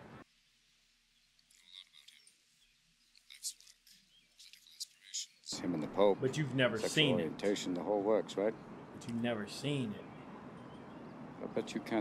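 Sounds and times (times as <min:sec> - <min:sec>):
faint high bird chirps: 0:01.1 - 0:06.4, 0:09.6 - 0:11.9.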